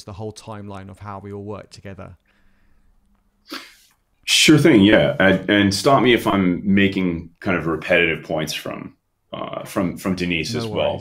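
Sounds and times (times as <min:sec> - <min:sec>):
man speaking: 0:00.0 - 0:02.2, 0:04.2 - 0:11.0
sharp breath: 0:02.3 - 0:04.0.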